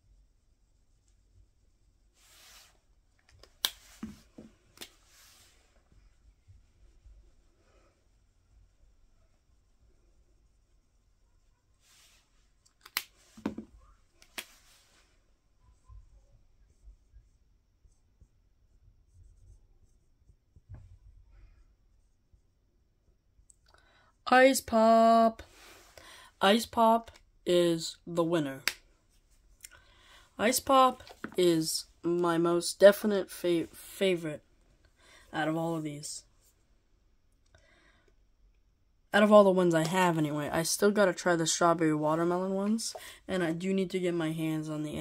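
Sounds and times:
marker cap clicks: 12.8s - 13.1s
marker scratching on whiteboard: 15.7s - 20.7s, 21.8s - 22.4s, 30.4s - 31.7s.

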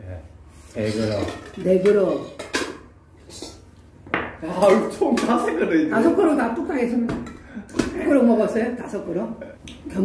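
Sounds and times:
metal bowls clinking: 0.8s - 3.6s.

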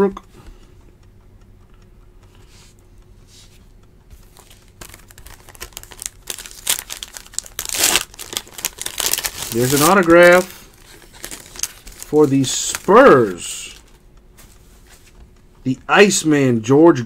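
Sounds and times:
foil wrapper crinkling and tearing: 4.3s - 14.0s.

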